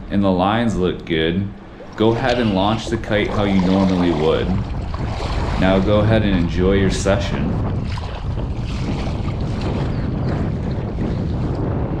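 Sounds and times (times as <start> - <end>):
wind buffeting microphone: 0.0 - 12.0
water lapping: 0.1 - 11.6.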